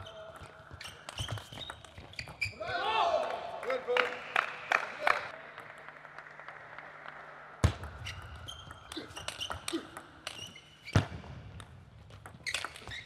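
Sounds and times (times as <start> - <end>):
player shouting: 2.6 - 3.8.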